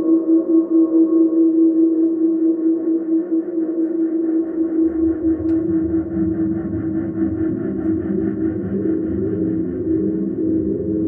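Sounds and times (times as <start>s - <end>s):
electronic drone with shimmer: 0.0s - 11.0s.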